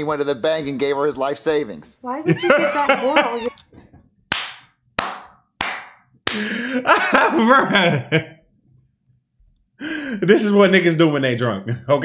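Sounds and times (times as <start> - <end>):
loud hand claps: 4.3 - 6.6.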